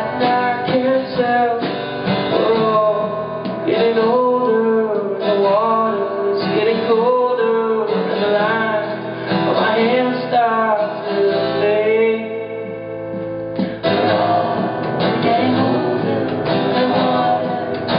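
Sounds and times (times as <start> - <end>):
bass: 0.0 - 17.9
drums: 0.0 - 17.9
electric guitar: 0.0 - 17.9
strummed acoustic guitar: 0.0 - 17.9.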